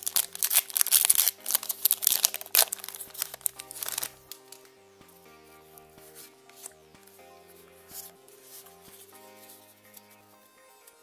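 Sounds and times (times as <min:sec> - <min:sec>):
foil wrapper crinkling and tearing: 0:00.0 - 0:04.6.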